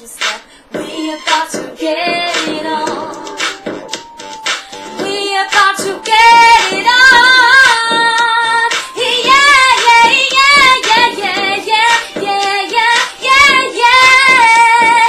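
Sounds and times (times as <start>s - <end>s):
woman singing: 0.0s - 3.6s, 5.0s - 15.0s
music track: 0.8s - 15.0s.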